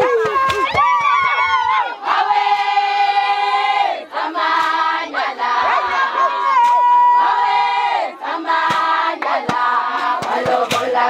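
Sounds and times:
women singing together: 0.3 - 11.0.

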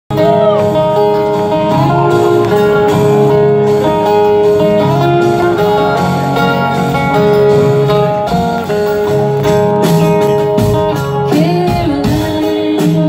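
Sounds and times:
acoustic guitar: 0.1 - 13.0
live band playing: 0.1 - 13.0.

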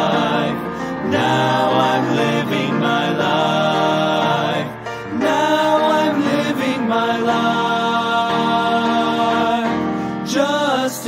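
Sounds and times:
vocal quartet singing in harmony: 0.0 - 11.0.

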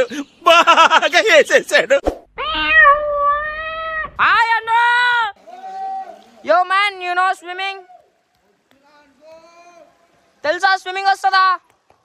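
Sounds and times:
high meow-like vocal calls: 2.4 - 4.2.

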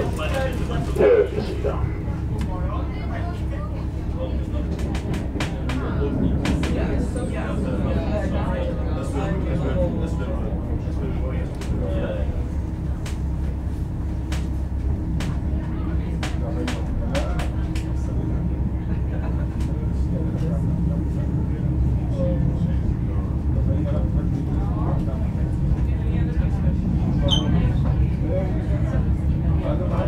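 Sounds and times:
faint murmuring voices: 0.0 - 30.0
train wheels rumbling on rail: 0.0 - 30.0.

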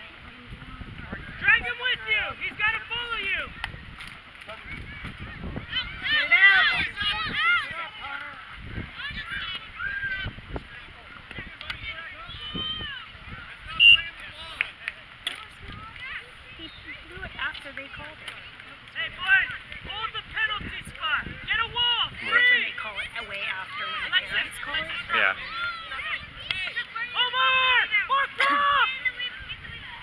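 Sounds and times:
faint voices: 0.0 - 30.0
referee's whistle blast: 13.7 - 14.1.

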